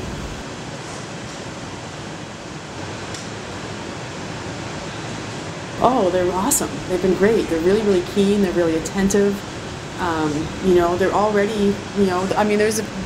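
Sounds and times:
furnace burners running: 0.0s - 13.0s
ventilation fans: 0.0s - 13.0s.

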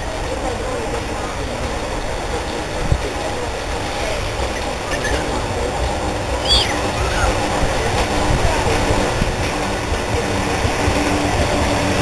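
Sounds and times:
tram rumbling on track: 0.0s - 12.0s
high-pitched chirp: 6.4s - 7.4s.

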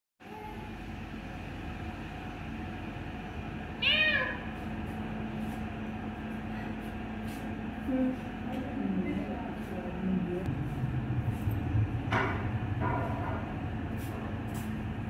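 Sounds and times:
low background hum: 0.2s - 15.0s
cat meowing: 3.8s - 4.5s.

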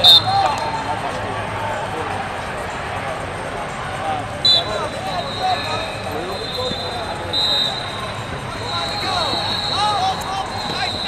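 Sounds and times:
background voices in large hall: 0.0s - 11.0s
shoes squeaking on mat: 4.5s - 11.0s.

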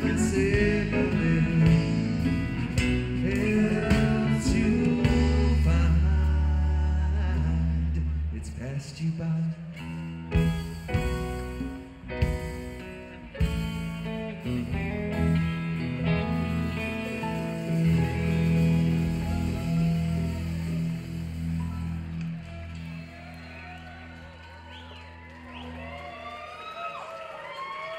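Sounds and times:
rock band holding a chord: 0.0s - 6.4s, 10.4s - 24.4s
audience whooping and whistling: 18.8s - 27.9s.

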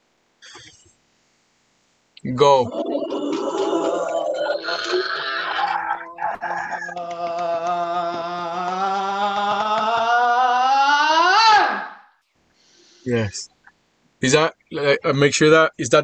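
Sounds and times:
voice sliding up in pitch: 2.6s - 11.2s.

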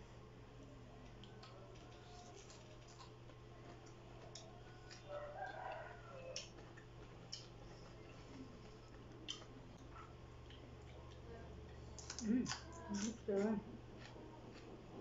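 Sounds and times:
steady low hum: 0.0s - 15.0s
chewing crunches: 1.1s - 14.8s
distant rooster crowing: 4.5s - 6.7s.

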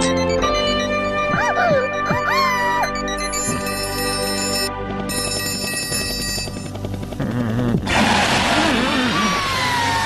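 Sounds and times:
background music: 0.0s - 8.1s
warbling cartoon voice: 8.4s - 10.0s.

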